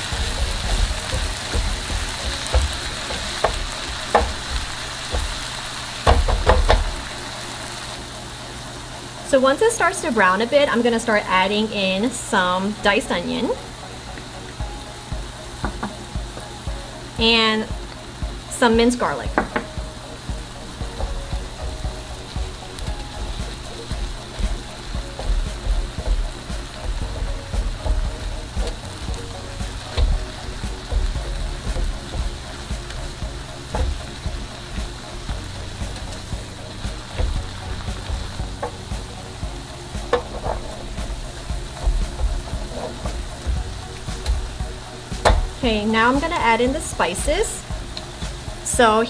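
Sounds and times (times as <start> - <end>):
spoon knocking and scraping pan: 0.0 - 7.1, 15.6 - 16.5, 19.3 - 45.6
meat sizzling in a frying pan: 0.0 - 49.0.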